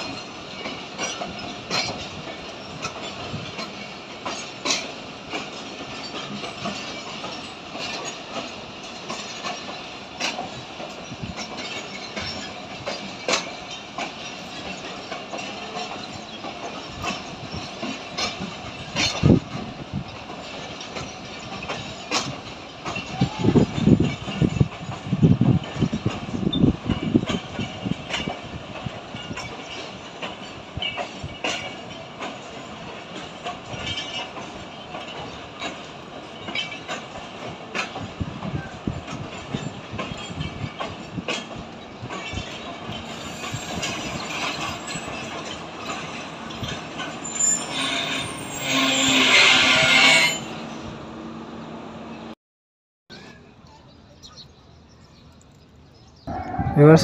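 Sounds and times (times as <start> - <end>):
train wheels clicking over rail joints: 0.0 - 51.0
high wheel squeal: 43.0 - 50.9.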